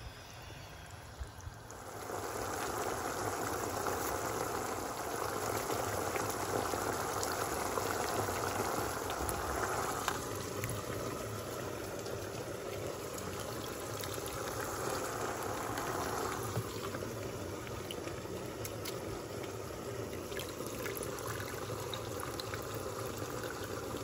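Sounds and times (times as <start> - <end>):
pot of rice boiling: 0.0 - 24.0
bubbles bursting crackle: 1.2 - 24.0.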